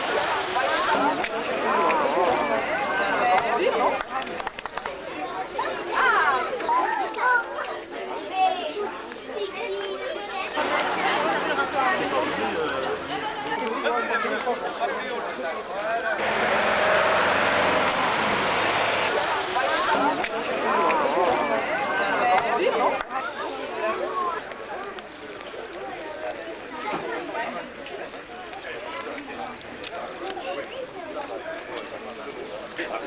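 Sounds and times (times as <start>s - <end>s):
crowd of adults and children talking: 0.0s - 33.0s
car and motorcycles passing: 10.6s - 13.2s, 16.2s - 22.3s.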